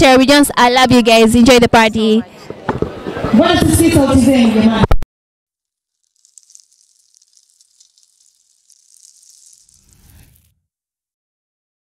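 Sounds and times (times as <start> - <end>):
crackling hiss: 5.6 - 10.6.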